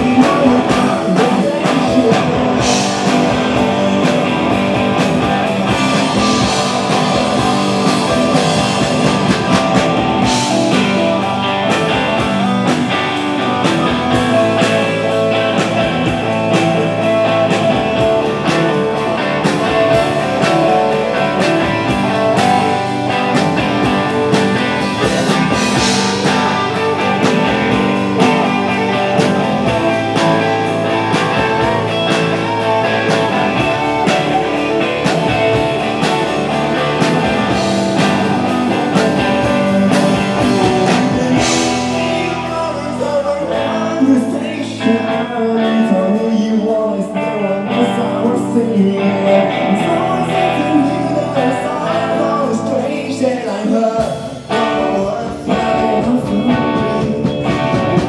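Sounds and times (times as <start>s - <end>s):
steady drum beat: 0.0s - 44.2s, 49.7s - 58.0s
distorted electric guitars: 0.0s - 58.0s.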